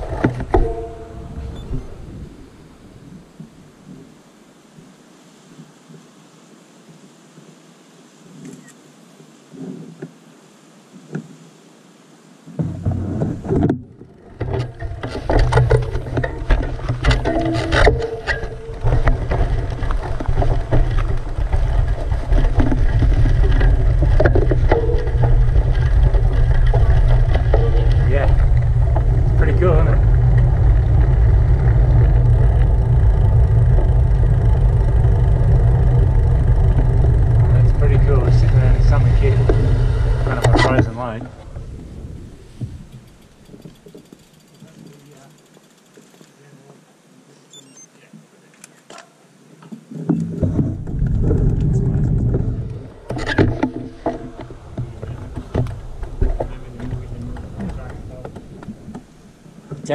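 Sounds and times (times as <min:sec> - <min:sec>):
wind buffeting microphone: 0:00.0 - 0:04.1, 0:12.6 - 0:45.0, 0:49.8 - 0:59.9
faint voices: 0:37.4 - 0:41.7, 0:54.2 - 0:58.9.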